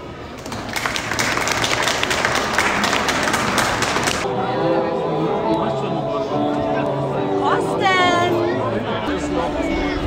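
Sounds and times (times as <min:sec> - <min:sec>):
audience applauding: 0:00.3 - 0:04.2.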